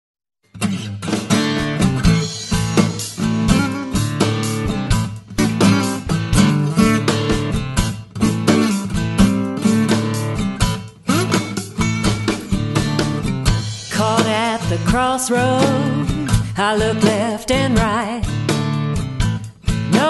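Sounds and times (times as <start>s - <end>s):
acoustic guitar blues: 0.5s - 20.0s.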